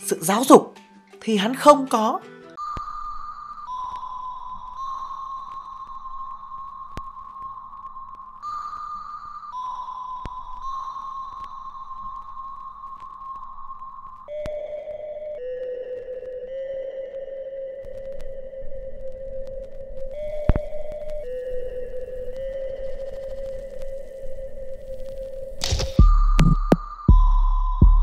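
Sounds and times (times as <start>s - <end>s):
electronic held tones: 2.6s - 28.0s.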